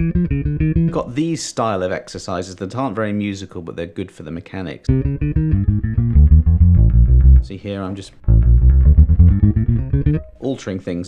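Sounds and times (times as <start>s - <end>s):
electric bass plucked notes: 0.0s - 1.2s, 4.9s - 7.6s, 8.2s - 10.4s.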